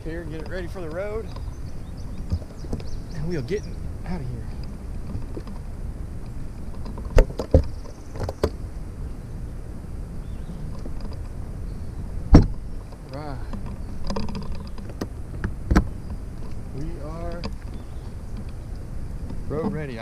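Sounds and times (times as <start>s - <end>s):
wind rumble on microphone: 0.0s - 20.0s
boat hatch lids knocking shut: 12.3s - 12.6s.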